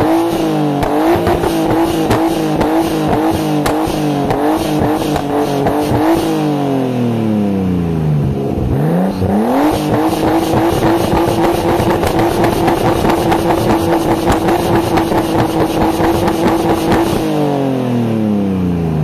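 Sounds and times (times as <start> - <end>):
car engine revving: 0.0 - 18.9
exhaust pops and crackles: 0.3 - 6.2, 9.7 - 17.3.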